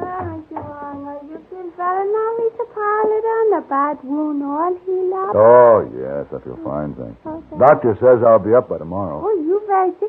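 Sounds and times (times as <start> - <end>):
woman singing slow melody: 0.0 - 5.5.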